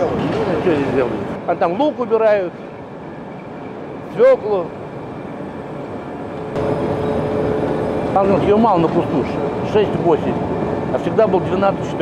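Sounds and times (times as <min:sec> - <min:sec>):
conveyor mechanical hum: 0:00.0 - 0:12.0.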